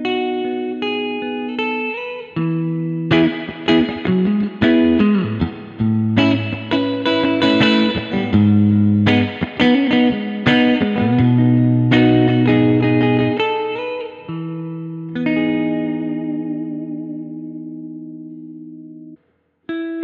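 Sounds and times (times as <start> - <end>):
clean electric guitar arpeggios: 0.0 - 20.0.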